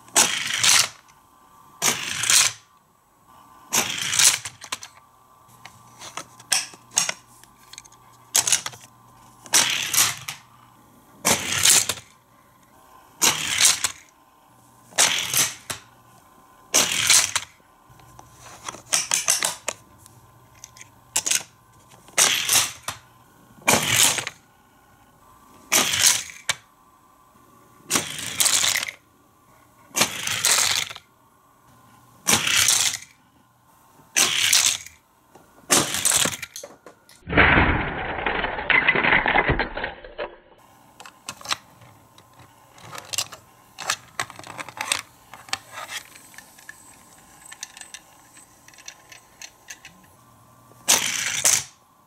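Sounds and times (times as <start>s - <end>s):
plastic toy launcher clacks: 0.1s - 1.0s, 1.8s - 2.6s, 3.7s - 5.0s, 6.0s - 10.4s, 11.3s - 12.1s, 13.2s - 14.1s, 14.9s - 15.9s, 16.7s - 17.5s, 18.7s - 19.8s, 22.1s - 23.0s, 27.9s - 29.0s, 30.0s - 31.0s, 32.3s - 33.1s, 34.2s - 35.0s, 35.7s - 40.2s, 41.0s - 50.1s, 50.8s - 51.8s.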